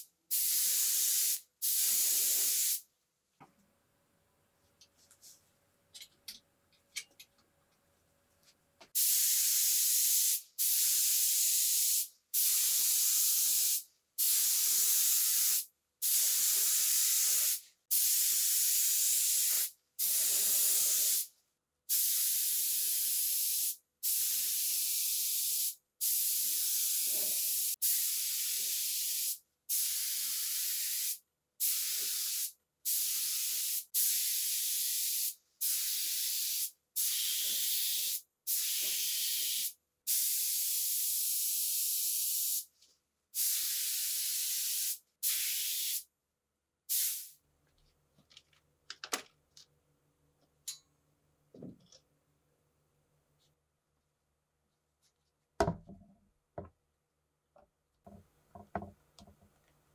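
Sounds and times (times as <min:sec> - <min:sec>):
spray gun hissing: 0:00.0 - 0:02.8, 0:09.0 - 0:21.3, 0:22.0 - 0:42.6, 0:43.4 - 0:46.0, 0:46.9 - 0:47.3.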